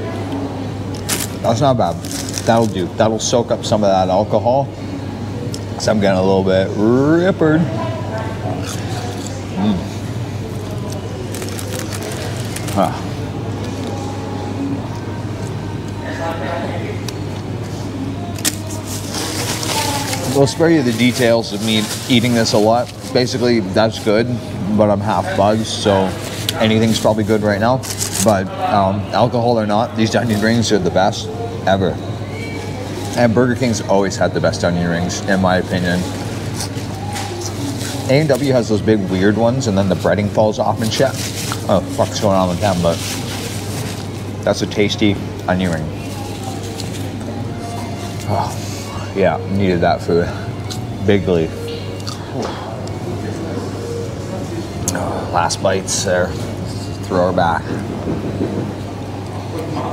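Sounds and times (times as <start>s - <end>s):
low background hum: 0.0s - 59.9s
paper wrapper crinkling: 1.0s - 2.9s, 10.6s - 13.1s, 18.4s - 23.7s, 25.4s - 28.6s, 35.7s - 44.4s.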